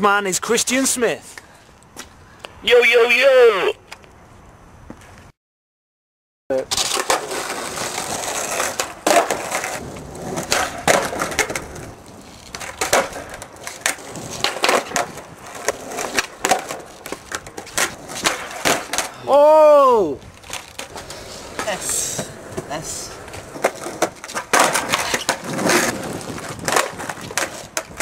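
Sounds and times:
skateboard wheels rolling on concrete: 0:00.0 - 0:05.3, 0:06.5 - 0:28.0
skateboard clacks landing: 0:12.6 - 0:19.1, 0:23.6 - 0:28.0.

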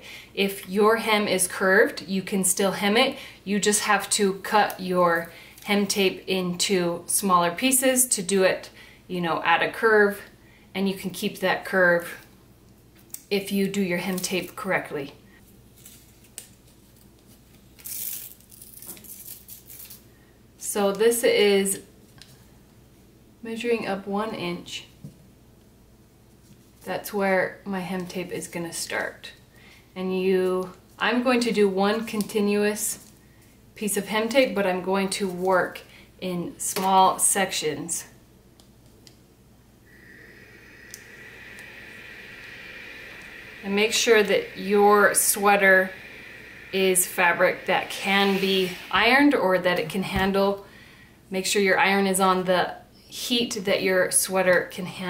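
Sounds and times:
thin high whine: 0:39.8 - 0:50.6
steam iron hissing: 0:39.9 - 0:50.5.

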